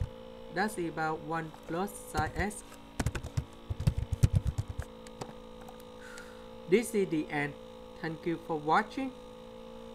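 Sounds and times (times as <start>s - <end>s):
electrical hum: 0.0s - 9.9s
keyboard typing: 3.0s - 5.8s.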